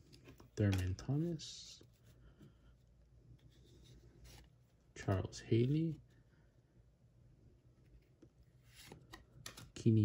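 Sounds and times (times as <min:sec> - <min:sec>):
trading cards sliding and rubbing: 0:03.3 - 0:05.2.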